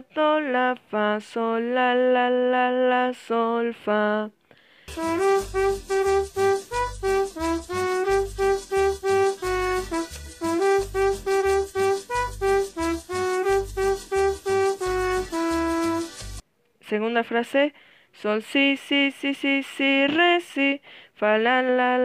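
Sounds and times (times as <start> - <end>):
trumpet playing short notes: 4.9 - 16.4.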